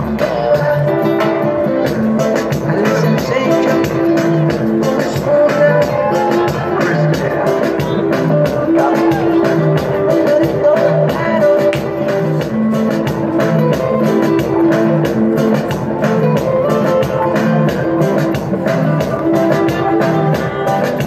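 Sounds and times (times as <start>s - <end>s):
dance music over loudspeakers: 0.0s - 21.0s.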